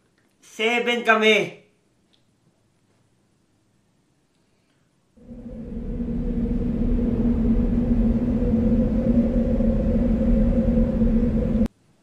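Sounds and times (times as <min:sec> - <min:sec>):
low rumbling drone with hum: 0:05.2 - 0:11.7.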